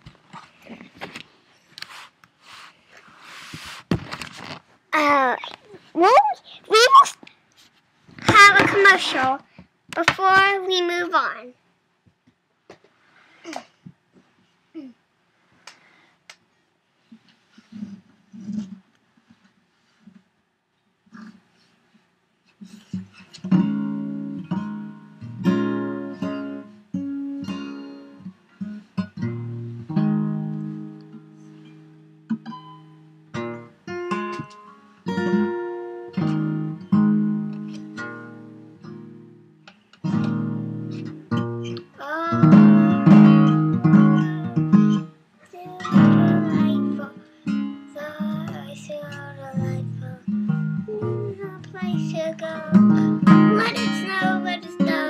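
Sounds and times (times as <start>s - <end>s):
acoustic guitar strumming: 23.0s - 55.0s
child singing: 41.9s - 47.3s, 47.9s - 55.0s.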